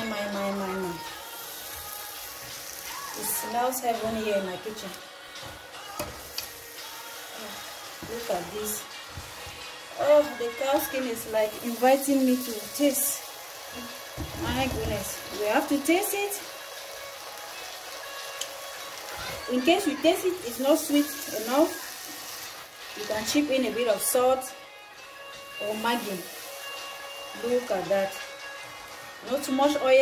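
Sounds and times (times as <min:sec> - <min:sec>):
pot simmering with sizzling hiss: 0:00.1 - 0:04.0, 0:05.9 - 0:24.2, 0:25.0 - 0:29.7.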